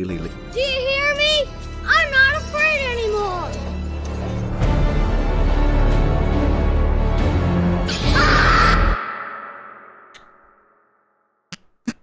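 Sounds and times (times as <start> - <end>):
dramatic music: 0.0 - 11.0
boy screaming: 8.0 - 9.0.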